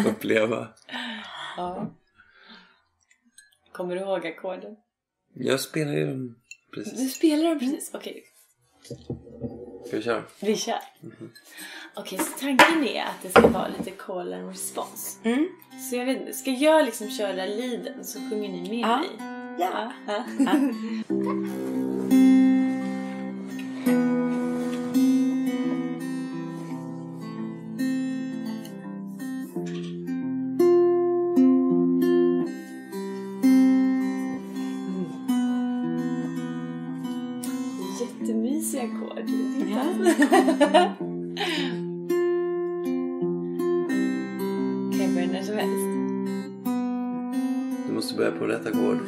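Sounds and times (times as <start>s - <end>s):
acoustic guitar strumming chords: 14.6s - 49.0s.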